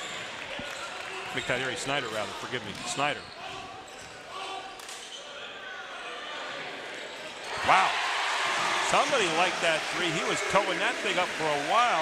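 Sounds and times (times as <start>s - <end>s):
murmur of spectators: 0.0s - 12.0s.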